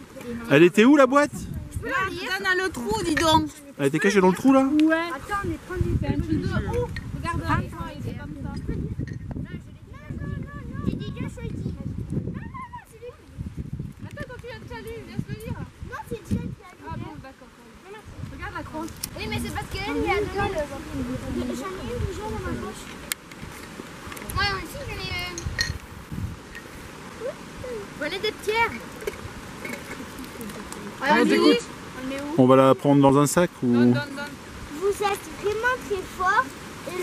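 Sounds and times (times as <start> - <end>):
children chattering: 1.5 - 25.6, 27.0 - 33.1, 33.7 - 37.0
steady background hiss: 15.6 - 37.0.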